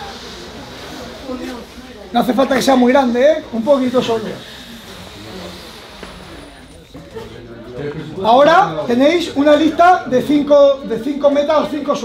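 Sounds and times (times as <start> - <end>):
breath puffs blowing balloons: 0.0 - 7.1
murmur of voices: 0.0 - 12.0.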